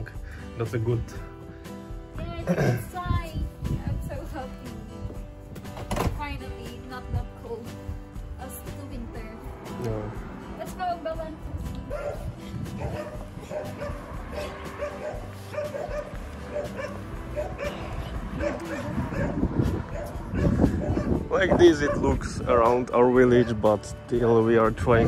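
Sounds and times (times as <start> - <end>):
background music: 0.0 - 25.0
small dogs barking and yipping: 11.8 - 22.2.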